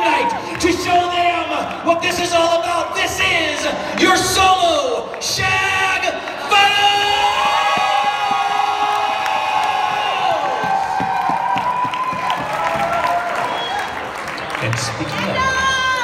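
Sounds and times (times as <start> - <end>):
crowd cheering: 0.0 - 16.0
scattered clapping: 3.2 - 15.5
long held whoops: 8.2 - 14.0.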